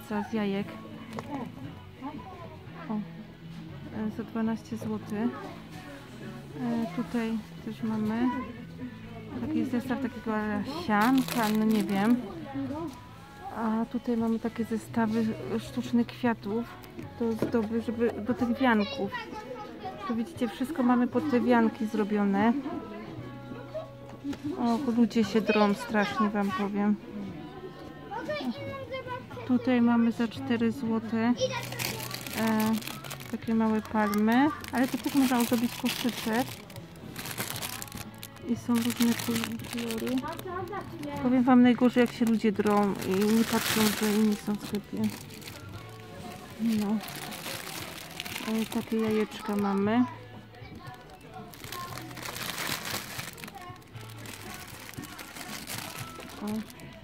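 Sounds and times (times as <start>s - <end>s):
shop background music: 0.0s - 57.0s
shoppers' voices: 0.0s - 57.0s
cellophane wrapping crinkling: 10.6s - 12.2s, 31.4s - 49.8s, 50.8s - 57.0s.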